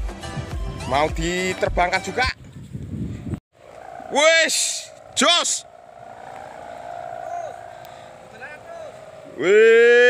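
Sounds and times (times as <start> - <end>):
kite hummer droning: 3.6 - 10.0.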